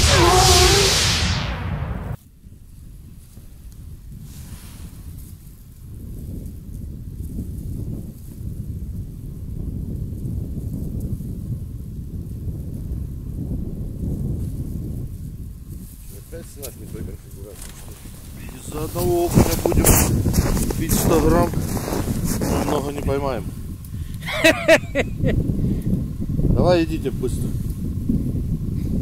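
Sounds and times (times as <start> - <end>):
wind buffeting microphone: 3.0 - 29.0.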